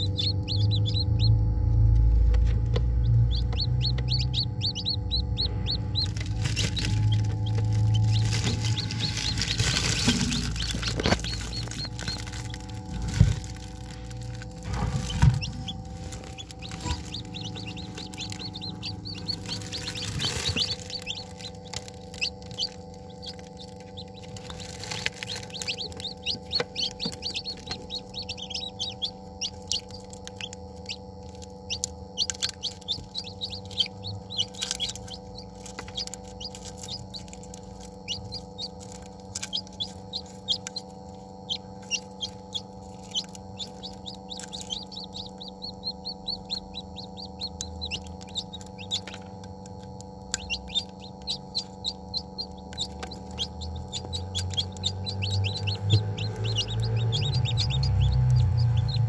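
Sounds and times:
chicks peeping: 0:00.0 - 0:59.0
steady hum: 0:00.0 - 0:59.0.

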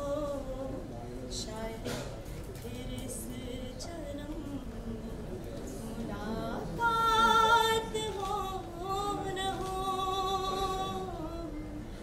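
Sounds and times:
woman singing long notes: 0:06.2 - 0:11.6.

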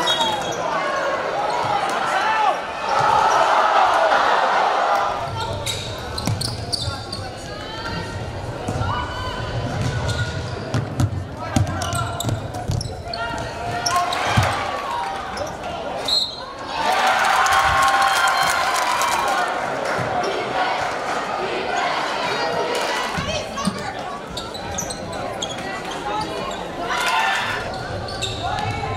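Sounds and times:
crowd voices: 0:00.0 - 0:28.9.

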